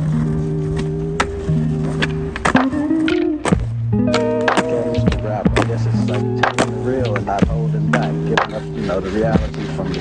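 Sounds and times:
background music: 0.0s - 10.0s
skateboard landing on asphalt: 0.7s - 5.8s.

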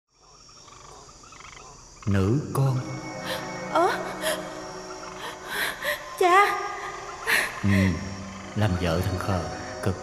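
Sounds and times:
frogs croaking: 0.1s - 10.0s
high insect trill: 0.1s - 10.0s.

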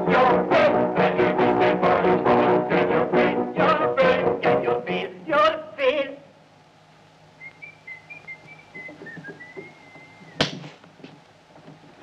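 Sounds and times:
person whistling: 7.4s - 10.6s
loud sharp thump: 10.4s - 10.8s.

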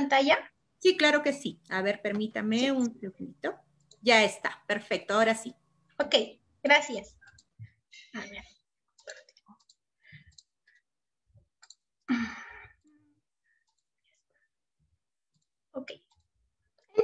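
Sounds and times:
computer mouse clicks: 7.0s - 7.6s, 8.9s - 10.8s, 11.5s - 12.0s.

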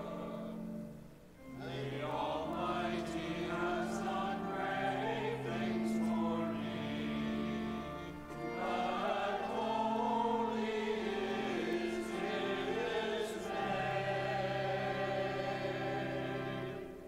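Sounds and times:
choir singing: 0.0s - 17.0s
organ playing held notes: 0.0s - 17.0s.

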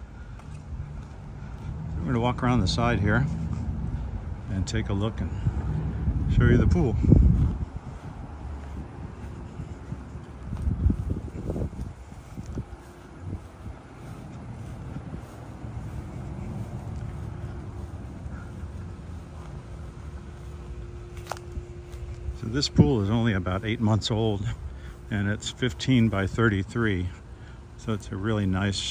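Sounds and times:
wind buffeting microphone: 0.0s - 23.8s
faint steady hum: 7.0s - 28.9s.

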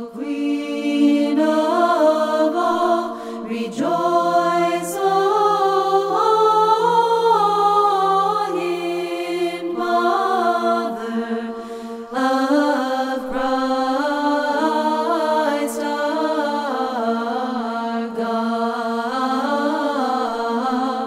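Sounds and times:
unaccompanied choir chanting: 0.0s - 21.0s.

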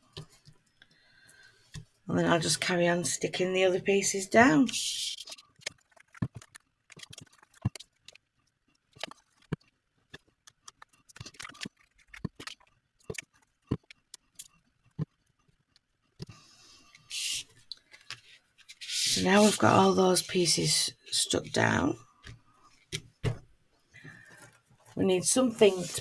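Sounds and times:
paper sliding: 18.6s - 19.8s, 25.4s - 26.0s.

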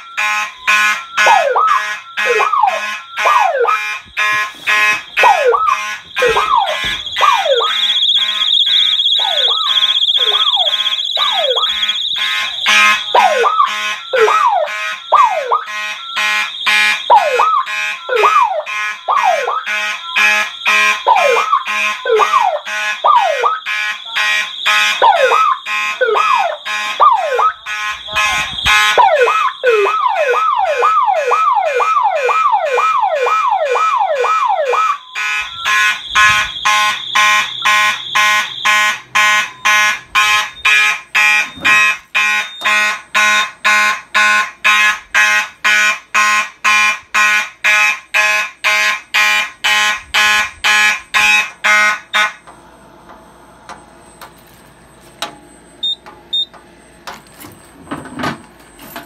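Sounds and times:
electronic siren sweeping down: 0.0s - 47.3s
fire alarm horns pulsing: 0.0s - 52.6s, 53.3s - 57.1s
steady high beep: 4.4s - 14.4s, 34.8s - 43.6s.

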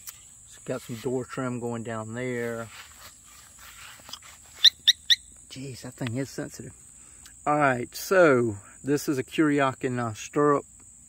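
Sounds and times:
motorcycle alarm chirps: 4.6s - 5.3s.

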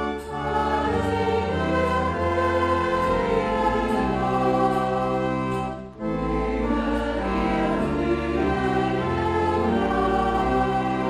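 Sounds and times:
clarinets bass and organ: 0.0s - 11.0s.

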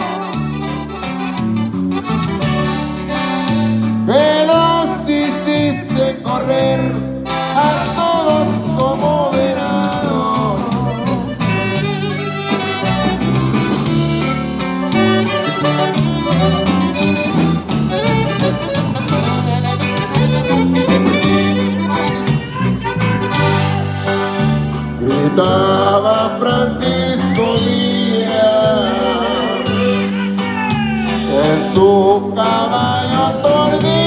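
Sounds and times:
accordion: 0.0s - 34.0s
bajo sexto guitar: 0.0s - 34.0s
bass: 0.0s - 34.0s.

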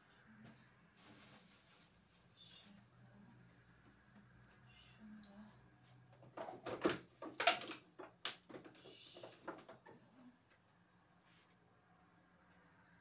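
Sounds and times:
bottles clattering in fridge: 6.3s - 8.8s.

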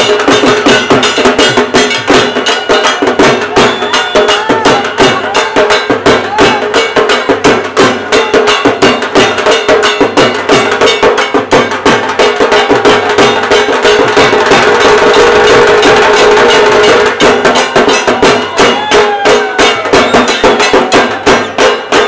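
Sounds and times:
barrel drums beaten fast: 0.0s - 22.0s.

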